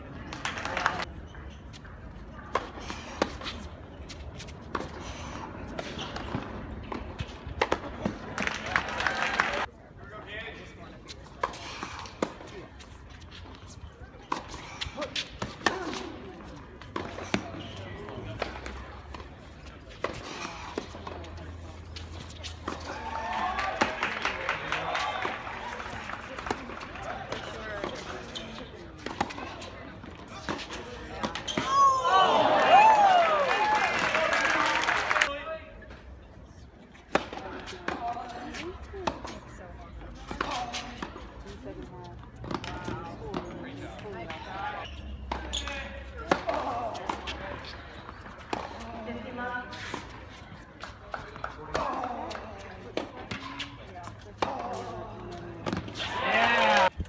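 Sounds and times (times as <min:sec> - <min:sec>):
murmur of voices: 0:07.1 - 0:57.0
people talking: 0:13.9 - 0:32.5, 0:37.4 - 0:44.8, 0:48.7 - 0:56.9
tennis ball bouncing on hard court: 0:15.2 - 0:31.7, 0:45.2 - 0:50.2
tennis ball impacts: 0:45.2 - 0:57.0.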